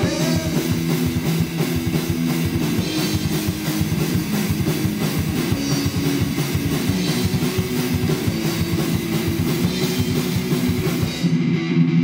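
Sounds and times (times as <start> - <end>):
drum kit fast beat: 0.0 - 12.0
electric guitar: 0.0 - 12.0.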